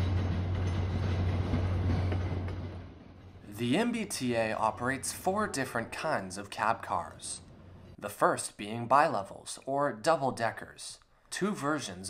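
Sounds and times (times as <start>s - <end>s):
steel wheels rumbling on rails: 0.0s - 3.4s
train passing with low drone: 0.0s - 3.5s.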